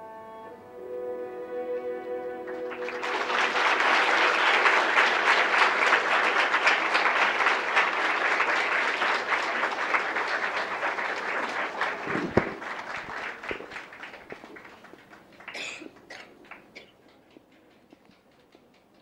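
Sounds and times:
music: 0:00.0 - 0:05.6
audience clapping: 0:02.4 - 0:19.0.

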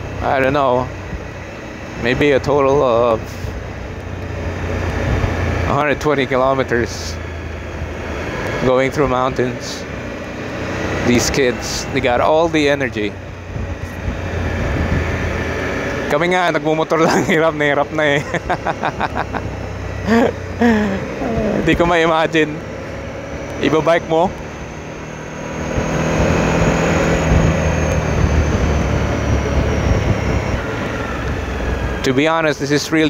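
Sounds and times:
motorcycle engine running: 0:00.0 - 0:33.0
wind and road noise: 0:00.0 - 0:33.0
rider voiced sounds: 0:20.0 - 0:22.6.

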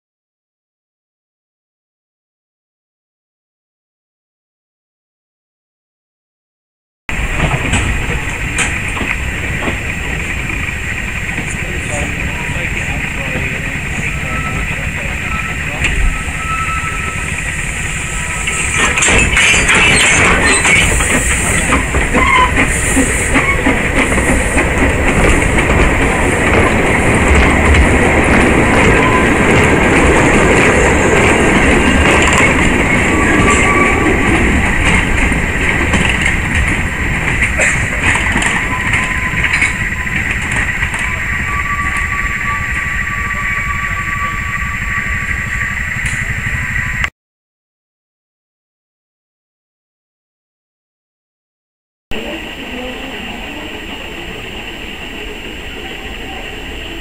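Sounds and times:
train wheels clattering on track: 0:07.1 - 0:47.1.

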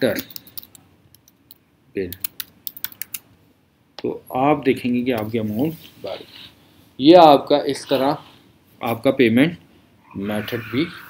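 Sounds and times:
computer keyboard typing: 0:00.1 - 0:00.8, 0:02.1 - 0:03.2.

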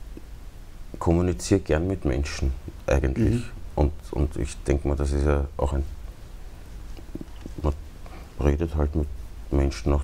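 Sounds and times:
steady low hum: 0:00.0 - 0:10.0
man speaking: 0:01.0 - 0:06.0, 0:07.2 - 0:07.8, 0:08.4 - 0:10.0.

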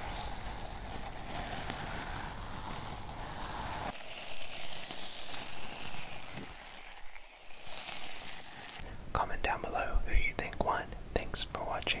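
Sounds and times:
crinkly object rubbed on microphone: 0:00.0 - 0:08.8
person whispering into microphone: 0:09.1 - 0:12.0.

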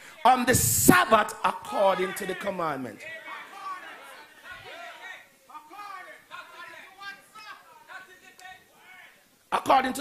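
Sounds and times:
amplified preacher's voice: 0:00.0 - 0:03.8, 0:04.5 - 0:10.0.

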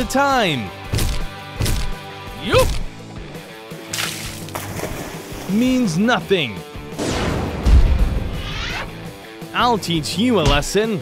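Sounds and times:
background music: 0:00.0 - 0:11.0
wet splat effect: 0:03.9 - 0:05.4.

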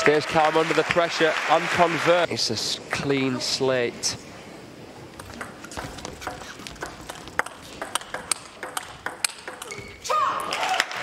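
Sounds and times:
table tennis ball clicking: 0:05.2 - 0:09.8.

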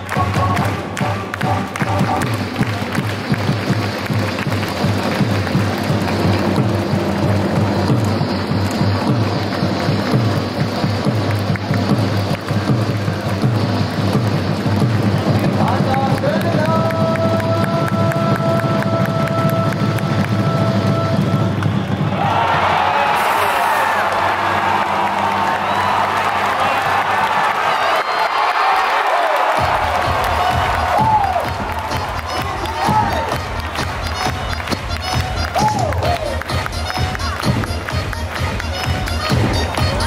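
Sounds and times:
drum beat: 0:00.0 - 0:23.3, 0:29.5 - 0:40.0.

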